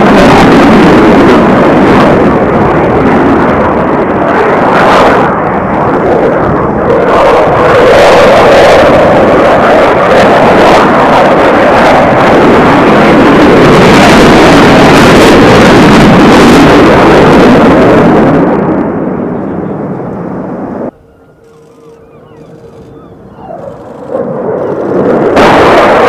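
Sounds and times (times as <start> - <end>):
loud jet engine noise: 0.0 - 26.0.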